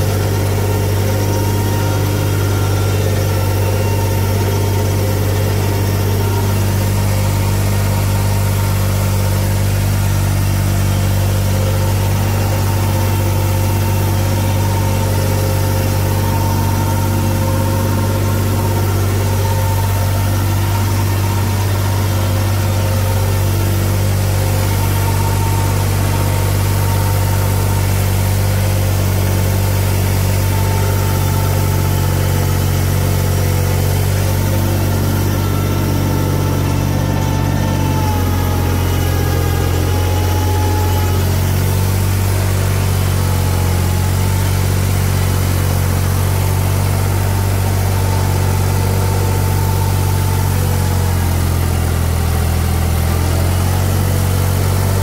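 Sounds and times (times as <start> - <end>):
tractor diesel engine under load: 0.0 - 55.0.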